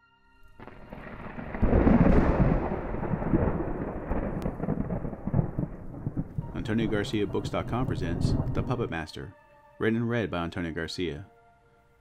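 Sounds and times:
rolling thunder: 0.6s - 8.9s.

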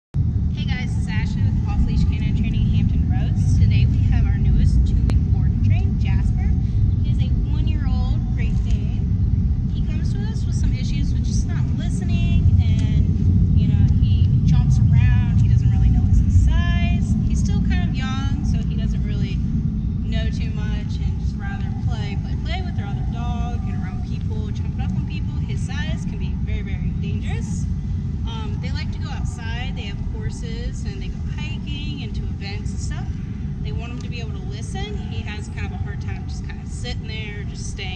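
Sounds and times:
loud low rumble: 0.2s - 37.9s
person talking: 9.8s - 19.4s, 28.3s - 33.1s.

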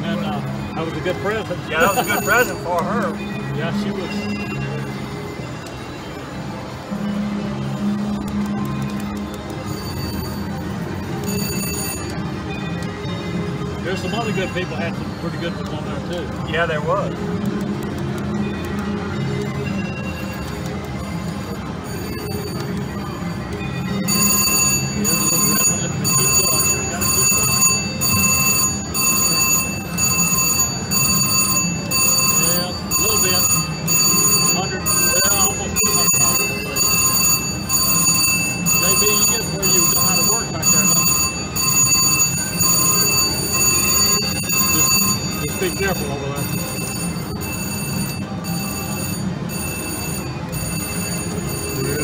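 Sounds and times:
slot machine win bell: 0.0s - 52.0s.

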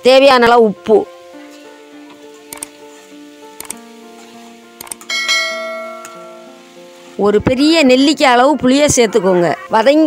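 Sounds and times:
soft background music: 0.0s - 10.0s
bright bell chime: 5.1s - 6.6s.

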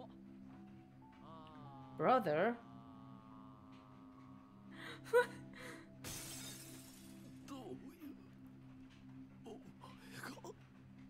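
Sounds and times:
low music drone: 0.0s - 11.0s
shattering crash: 6.0s - 7.4s.

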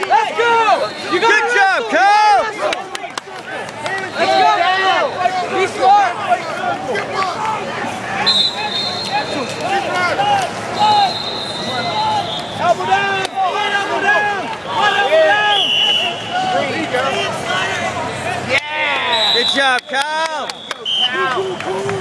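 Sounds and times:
crowd chatter in hall: 0.0s - 22.0s.

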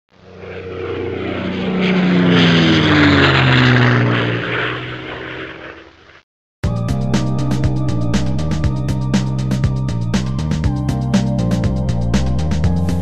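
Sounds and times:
aircraft engine drone flyby: 0.1s - 13.0s.

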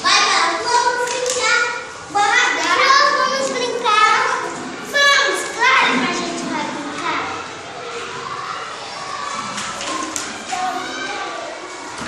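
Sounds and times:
children calling out and squealing: 0.0s - 12.0s
children chattering: 0.0s - 12.0s.

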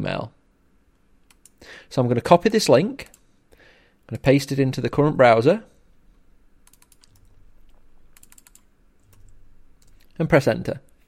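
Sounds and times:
computer keyboard keystrokes: 6.6s - 10.1s.

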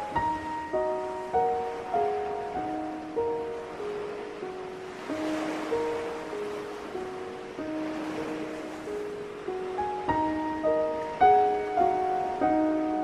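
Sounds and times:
gentle instrumental music: 0.0s - 13.0s
ocean waves: 0.0s - 13.0s.

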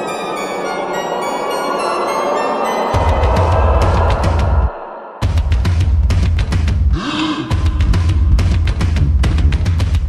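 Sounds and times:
video game music with drum beat: 3.0s - 10.0s.

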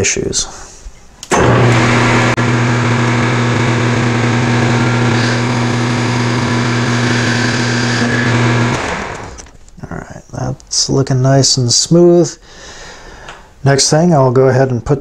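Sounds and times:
metal lathe humming: 1.3s - 9.6s.

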